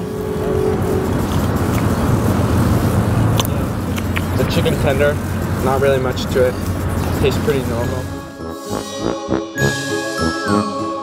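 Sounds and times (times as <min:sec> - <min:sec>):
road traffic rumble: 0:00.0 - 0:08.8.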